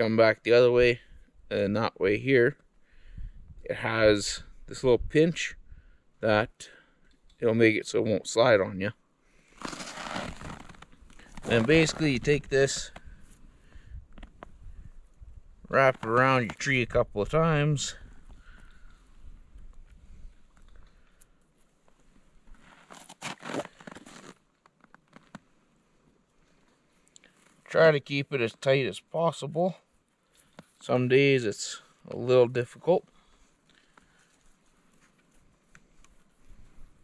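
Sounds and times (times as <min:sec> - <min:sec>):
person shifting on snow: 0:09.4 - 0:13.2, 0:22.6 - 0:24.5
wire scraping and rustling: 0:09.5 - 0:13.4.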